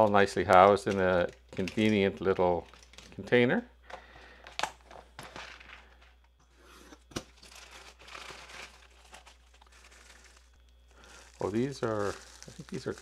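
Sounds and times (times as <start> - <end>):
plastic bag and bubble wrap crinkling: 0.0 - 3.4, 7.2 - 13.0.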